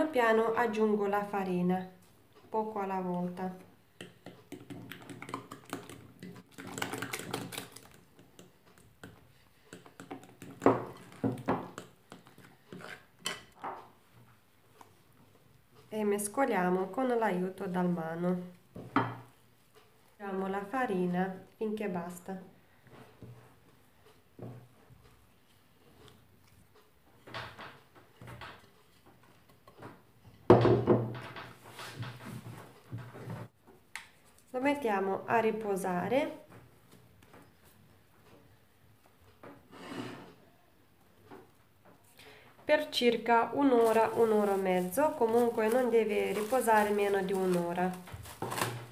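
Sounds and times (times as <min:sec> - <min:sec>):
hands kneading dough: 0:43.2 - 0:48.9.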